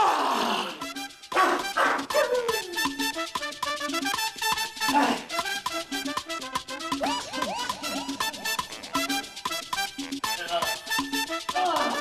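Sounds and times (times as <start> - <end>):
background music: 0.0 - 12.0
man yelling: 11.6 - 12.0.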